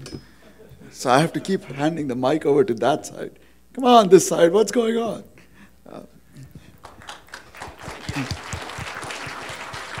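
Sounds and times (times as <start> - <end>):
audience applauding: 6.8 - 10.0.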